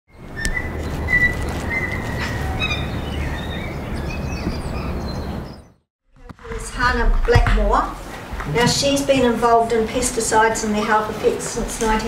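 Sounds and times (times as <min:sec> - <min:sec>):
birds chirping and whistling: 0:00.1 - 0:05.8.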